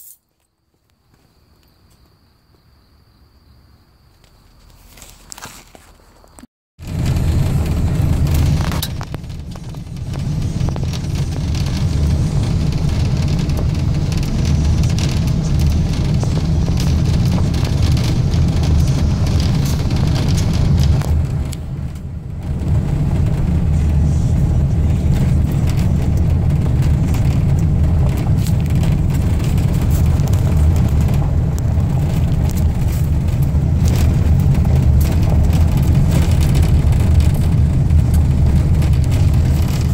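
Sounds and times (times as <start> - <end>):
car driving on dirt road: 6.8 - 39.9.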